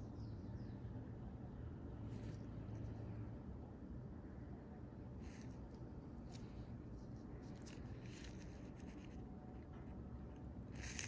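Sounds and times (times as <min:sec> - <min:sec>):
low steady hum: 0:00.0 - 0:11.0
faint rustle: 0:05.2 - 0:10.0.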